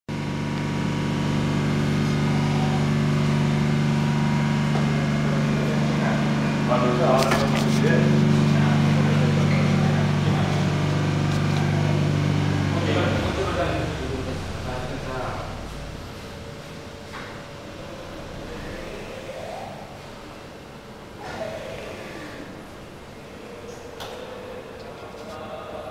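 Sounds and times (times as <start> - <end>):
workshop machinery humming: 0.1 - 25.9.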